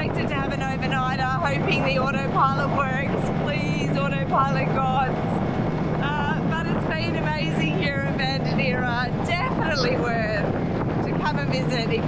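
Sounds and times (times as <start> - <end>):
woman talking: 0.0 - 5.4, 6.0 - 12.0
outboard motor running: 0.0 - 12.0
wind buffeting microphone: 0.0 - 12.0.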